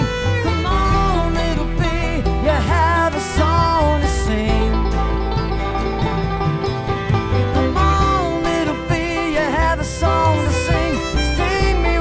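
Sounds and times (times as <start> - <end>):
banjo: 0.0 - 12.0
fiddle melody: 0.0 - 12.0
strummed acoustic guitars: 0.0 - 12.0
upright bass line: 0.0 - 12.0.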